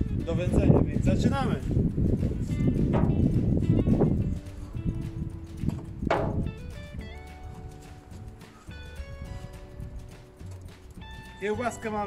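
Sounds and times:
background music melody: 0:00.0 - 0:12.0
sharp percussive knocks: 0:02.8 - 0:04.6, 0:05.5 - 0:08.6.

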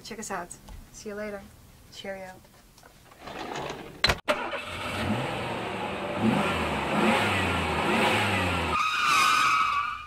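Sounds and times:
high-pitched tyre squeal: 0:08.6 - 0:10.0.

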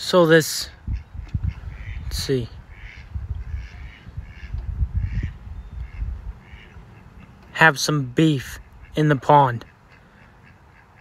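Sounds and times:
ducks quacking faintly: 0:00.2 - 0:11.0
low rumble on microphone: 0:00.7 - 0:07.0.

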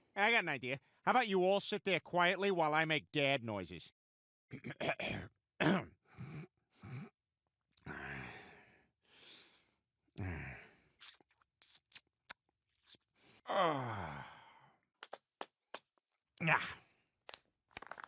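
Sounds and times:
mouth clicks and lip smacks: 0:11.0 - 0:13.0, 0:15.0 - 0:15.9, 0:17.3 - 0:18.0
cartoon man groaning: 0:13.5 - 0:14.3, 0:16.4 - 0:16.8
long falling sigh-groan: 0:13.5 - 0:14.4.

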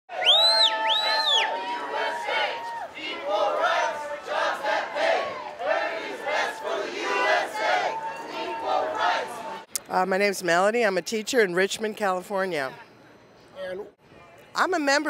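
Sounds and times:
crowd shouting and chanting: 0:00.1 - 0:09.7.

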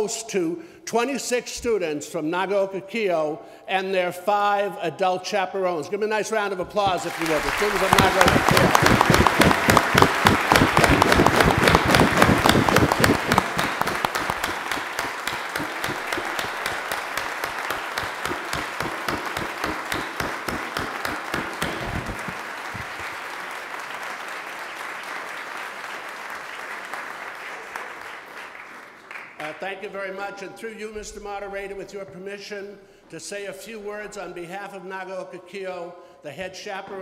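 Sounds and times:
audience applauding: 0:06.8 - 0:29.3.

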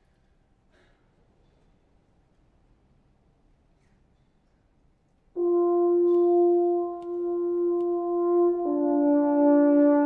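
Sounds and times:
brass held note: 0:05.4 - 0:10.0.

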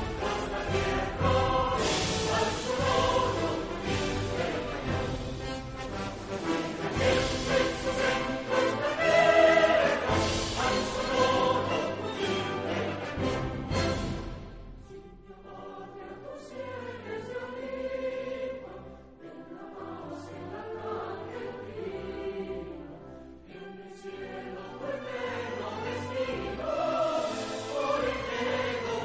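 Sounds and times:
choir singing: 0:00.0 - 0:29.0
orchestral accompaniment: 0:00.0 - 0:29.0.

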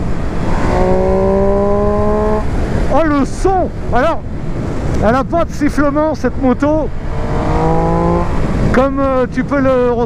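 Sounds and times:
rushing wind noise: 0:00.0 - 0:10.0
motorcycle engine running: 0:06.9 - 0:08.8.

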